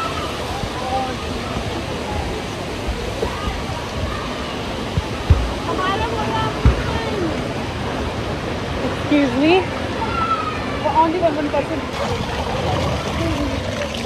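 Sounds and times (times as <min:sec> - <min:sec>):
distant voices: 0:00.0 - 0:14.0
water rushing through slides: 0:00.0 - 0:14.0
dull thumps: 0:05.0 - 0:05.7, 0:06.6 - 0:07.0.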